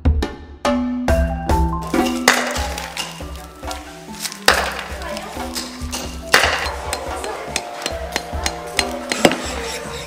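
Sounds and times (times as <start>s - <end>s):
hammer tapping chisel on stone: 6.4s - 9.8s.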